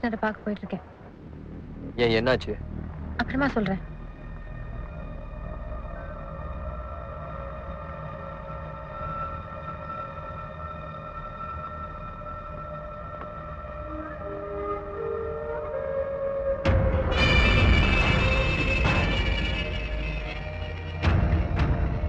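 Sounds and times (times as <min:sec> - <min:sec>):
low rumble: 0:00.0 - 0:14.7
tense drone of held notes: 0:00.0 - 0:22.0.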